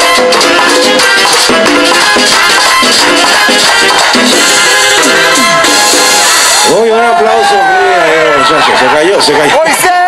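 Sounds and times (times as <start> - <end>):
crowd: 0.0 - 10.0
loud dance music: 0.0 - 10.0
person shouting: 6.9 - 8.5.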